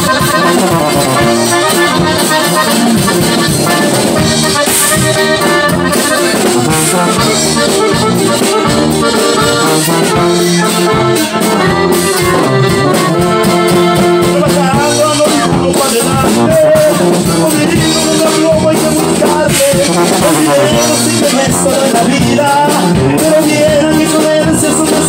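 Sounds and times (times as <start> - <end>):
accordion melody: 0.0 - 25.0
guitar: 0.0 - 25.0
tuba bass: 0.0 - 25.0.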